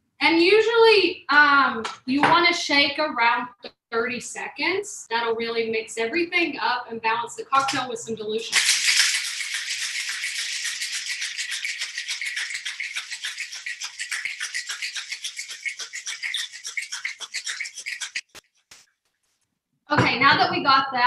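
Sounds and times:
ice rattling in cocktail shaker: 8.5 - 18.4.

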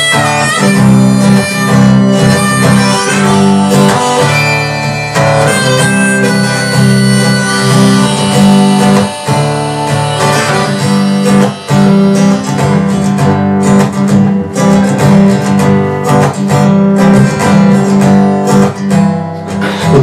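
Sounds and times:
acoustic guitar strummed: 0.0 - 20.0
harmonica melody: 0.0 - 20.0.

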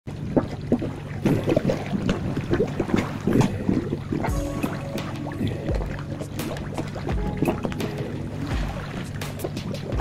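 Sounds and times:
fish splashing and slurping: 0.1 - 10.0
water pouring into pond: 0.1 - 10.0.

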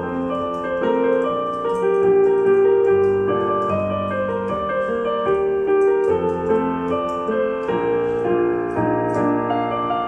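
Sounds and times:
digital piano pop melody: 0.0 - 10.0.

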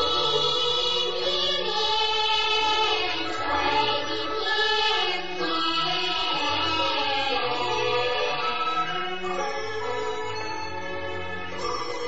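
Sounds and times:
opera singing with several voices: 0.0 - 9.1
traditional instrumental accompaniment: 0.0 - 12.0.

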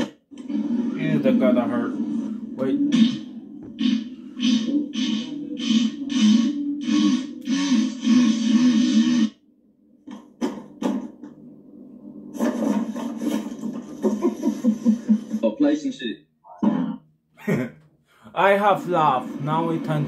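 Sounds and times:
busy noisy clip: 12.1 - 15.8, 18.6 - 20.0.

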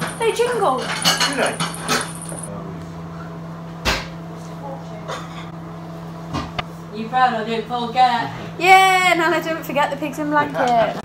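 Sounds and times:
steady low hum: 0.0 - 3.6.

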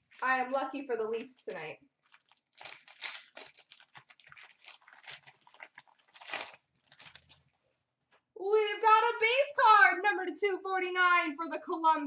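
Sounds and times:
wrapper and cards crinkling: 0.0 - 7.6.

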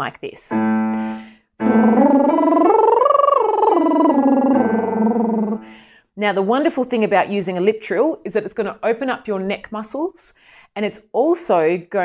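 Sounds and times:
keyboard arpeggio: 0.5 - 5.7
woman singing lip trill: 1.6 - 5.7.

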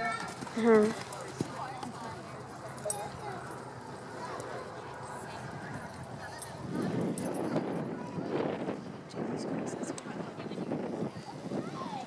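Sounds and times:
faint chatter: 0.0 - 12.0.

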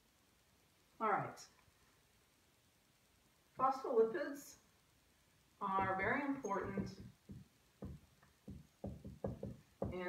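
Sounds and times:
person speaking: 5.6 - 10.0
marker squeaking on whiteboard: 5.8 - 10.0.

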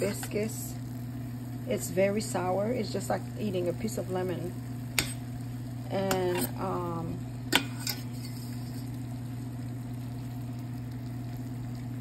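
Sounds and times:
leaves sizzling in a pan: 0.0 - 12.0
steady low hum: 0.0 - 12.0.

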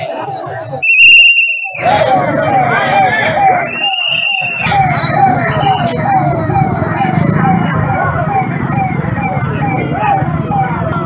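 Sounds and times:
crowd voices: 0.0 - 11.0
siren wailing: 0.8 - 11.0.

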